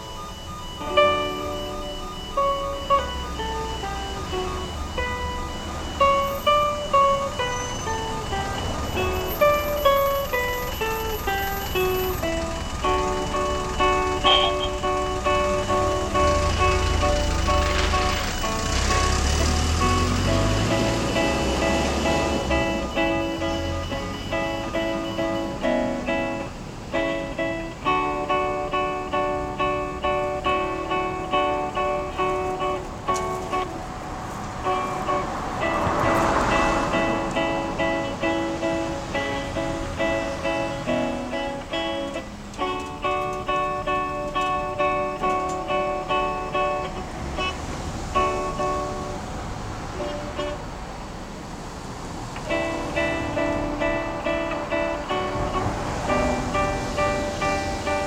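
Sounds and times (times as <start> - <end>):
classical guitar playing: 0.0 - 51.1, 52.0 - 58.0
rushing noise: 0.0 - 58.0.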